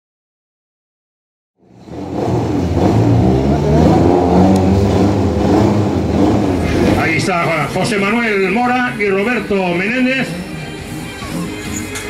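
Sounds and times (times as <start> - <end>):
car engine revving: 1.6 - 12.0.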